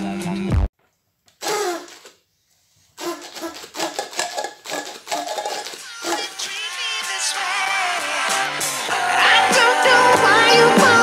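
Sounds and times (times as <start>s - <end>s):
party blower squawk: 1.4s - 2.1s, 3.0s - 6.8s.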